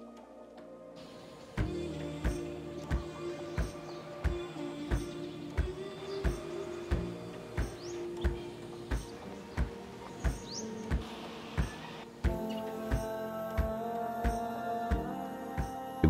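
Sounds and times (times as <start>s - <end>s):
music with steady beat: 1.6s - 15.8s.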